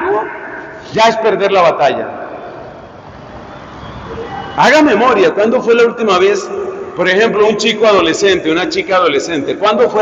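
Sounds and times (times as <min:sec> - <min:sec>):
man talking: 0:00.0 - 0:02.2, 0:04.6 - 0:10.0
steady background noise: 0:00.0 - 0:10.0.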